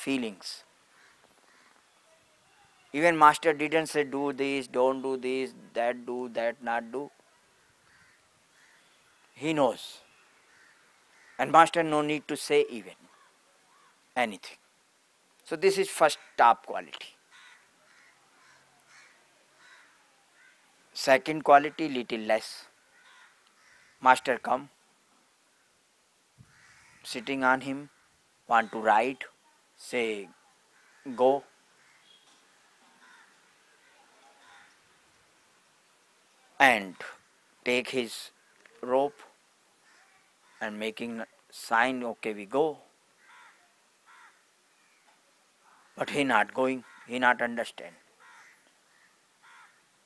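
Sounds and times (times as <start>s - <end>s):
faint scratchy bird calls: 0.1s - 14.3s, 15.4s - 50.0s
crow cawing: 0.9s - 2.0s, 7.3s - 9.3s, 10.1s - 11.6s, 13.1s - 14.0s, 17.3s - 20.7s, 22.8s - 24.1s, 26.4s - 27.1s, 27.8s - 28.8s, 30.3s - 34.8s, 39.8s - 40.7s, 43.2s - 45.0s, 46.8s - 47.2s, 48.0s - 49.9s.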